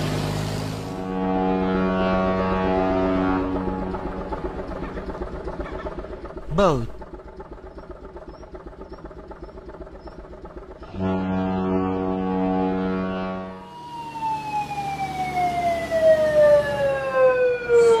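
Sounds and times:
low engine rumble: 0.0 - 18.0
ship's horn blast: 0.8 - 4.9, 10.8 - 13.8
fire engine siren: 0.9 - 5.8, 10.8 - 18.0.

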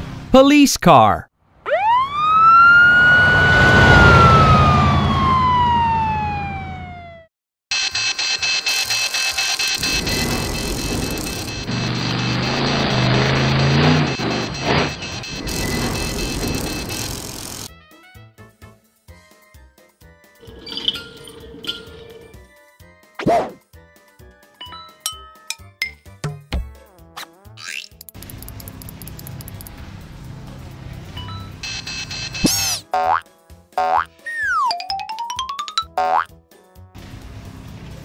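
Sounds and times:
cartoon police siren wail: 1.6 - 7.3.

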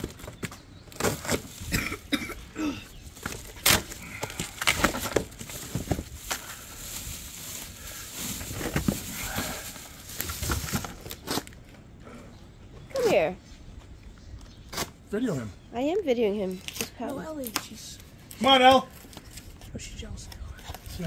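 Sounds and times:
packaging rustling and crinkling: 2.9 - 11.8.

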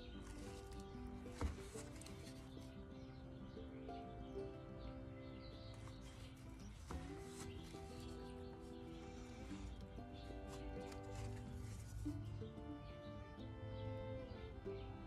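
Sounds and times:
soft instrumental music: 0.0 - 15.0.

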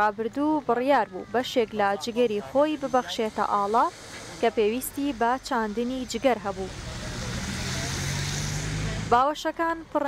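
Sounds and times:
road noise: 0.0 - 10.0
vehicle engine running: 3.2 - 9.2.

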